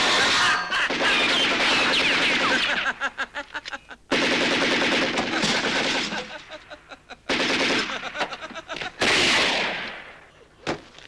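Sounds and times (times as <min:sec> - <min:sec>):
submachine gun fire: 0:00.0 - 0:02.8, 0:04.1 - 0:06.4, 0:07.3 - 0:08.4, 0:09.0 - 0:10.2.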